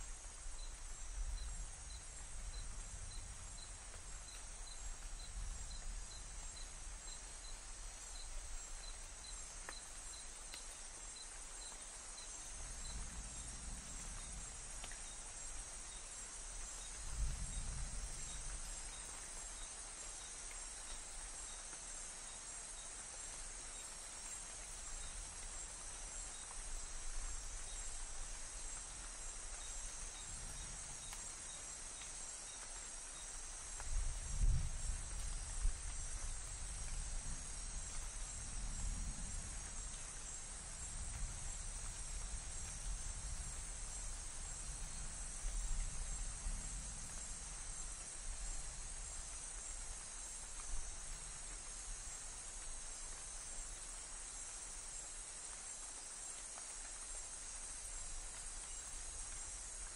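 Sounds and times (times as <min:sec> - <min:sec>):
chorus of insects: 0:00.0 - 0:59.9
insect chirping: 0:00.0 - 0:59.9.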